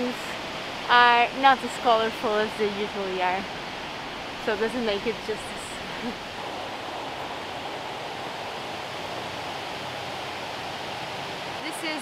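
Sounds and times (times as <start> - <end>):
river water rushing over weir: 0.0 - 12.0.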